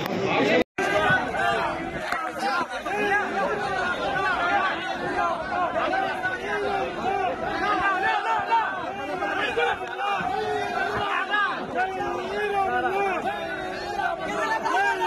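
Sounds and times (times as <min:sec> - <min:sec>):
crowd shouting: 0:00.2 - 0:15.0.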